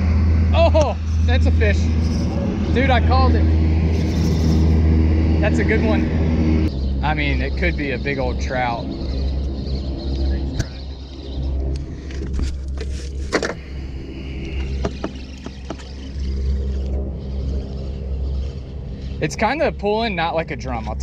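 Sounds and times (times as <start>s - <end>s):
outboard motor idling: 0.0s - 21.0s.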